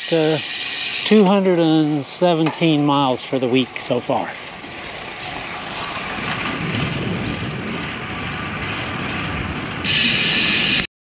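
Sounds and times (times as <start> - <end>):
bicycle rolling on pavement: 0.0 - 10.9
wind on camera microphone: 5.2 - 10.9.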